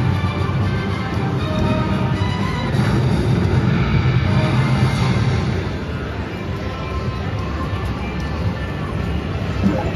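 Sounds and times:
slot machine music and jingles: 0:09.5 - 0:09.9.

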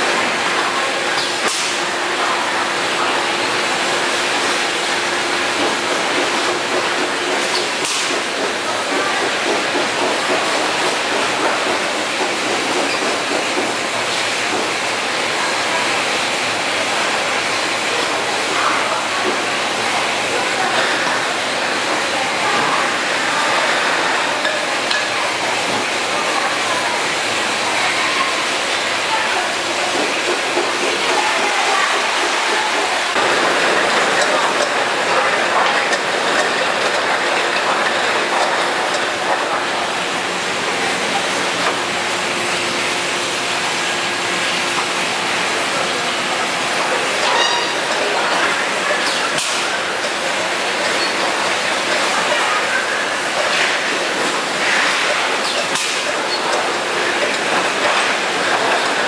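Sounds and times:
bottling line clatter: 0:28.8 - 0:41.8, 0:46.7 - 0:59.0.

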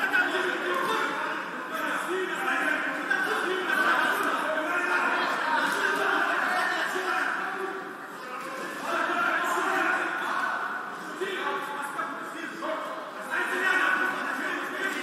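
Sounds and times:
man talking: 0:00.0 - 0:15.0.

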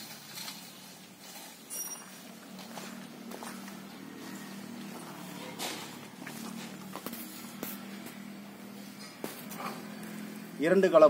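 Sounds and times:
wheel hoe clacking and scraping: 0:00.0 - 0:10.6.

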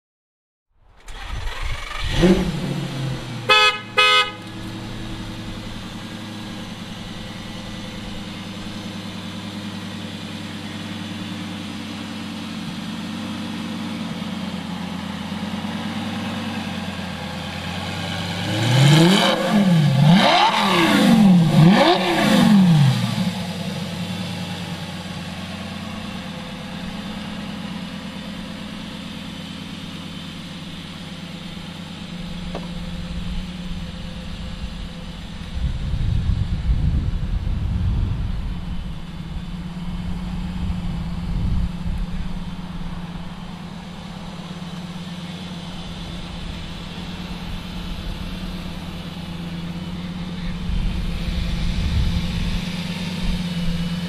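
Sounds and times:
sports car engine idling and revving: 0:01.0 - 0:54.0.

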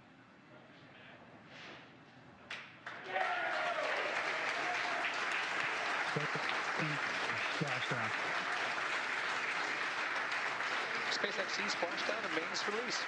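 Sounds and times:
crowd applauding: 0:02.8 - 0:13.0.

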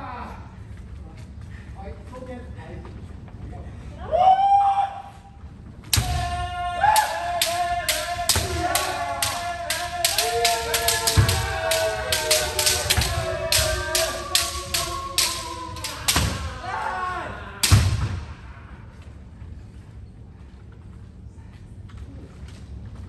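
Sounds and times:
bamboo swords striking helmets: 0:05.9 - 0:18.4
people shouting: 0:05.9 - 0:18.9.

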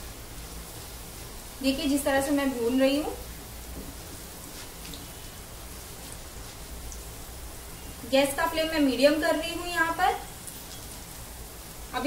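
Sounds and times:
oil sizzling in a pan: 0:00.0 - 0:12.0.

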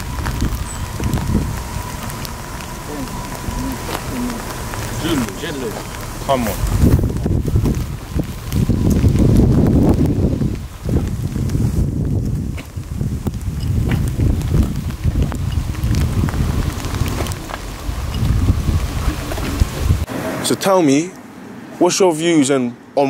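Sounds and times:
wind buffeting microphone: 0:00.0 - 0:20.1.

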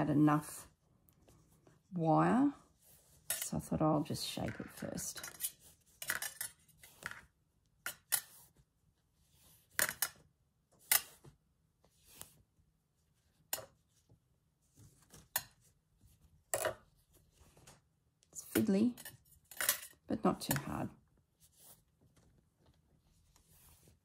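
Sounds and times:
wire and fabric being handled: 0:04.6 - 0:19.9, 0:21.2 - 0:24.0.

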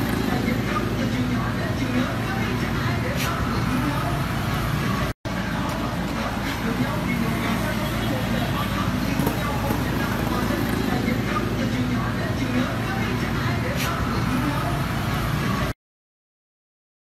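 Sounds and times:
indistinct voices: 0:00.0 - 0:15.8
motorbike traffic: 0:00.0 - 0:15.8.

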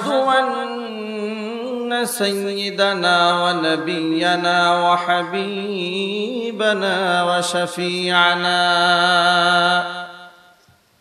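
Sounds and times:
man chanting melodic recitation: 0:00.0 - 0:10.5.

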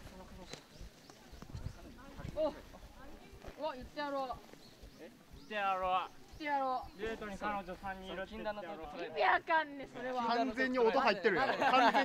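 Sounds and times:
footsteps on dirt path: 0:00.0 - 0:08.4.

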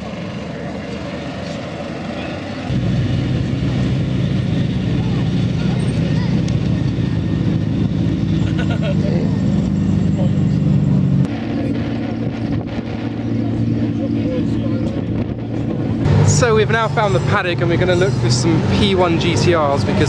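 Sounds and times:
crowd chatter: 0:00.0 - 0:02.8, 0:04.4 - 0:07.8, 0:08.4 - 0:20.0.

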